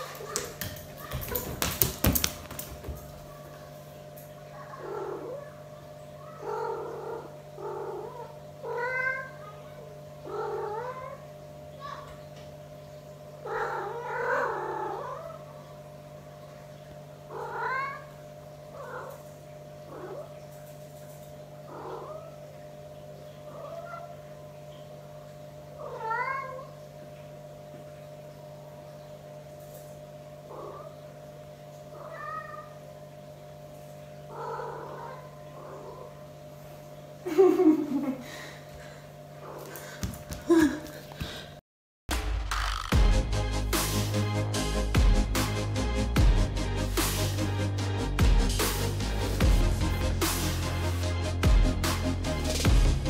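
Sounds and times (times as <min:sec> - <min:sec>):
steady low hum: 0:00.0 - 0:53.0
cat meowing: 0:06.2 - 0:09.6, 0:17.3 - 0:18.1, 0:21.7 - 0:22.4, 0:25.8 - 0:26.7, 0:32.0 - 0:32.8
low hum: 0:42.1 - 0:53.0.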